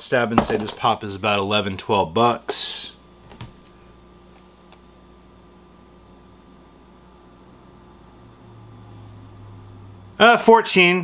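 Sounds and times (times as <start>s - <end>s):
low electrical hum: 0.0s - 11.0s.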